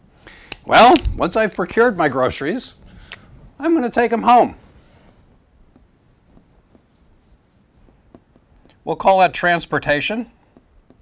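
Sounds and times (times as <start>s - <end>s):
marker scratching on whiteboard: 3.8s - 11.0s
marker tip tapping: 5.6s - 8.8s, 10.4s - 11.0s.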